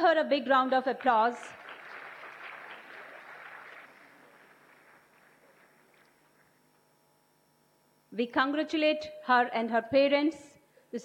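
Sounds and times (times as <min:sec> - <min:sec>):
audience applauding: 0:01.0 - 0:06.6.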